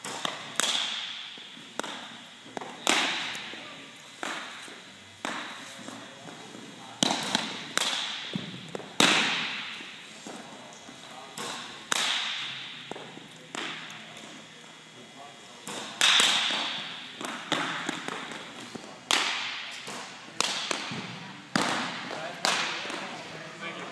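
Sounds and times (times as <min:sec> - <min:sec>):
baseballs smacking into mitts: 0:00.0 - 0:03.6, 0:04.2 - 0:06.4, 0:07.0 - 0:10.5, 0:11.4 - 0:14.3, 0:15.6 - 0:23.2.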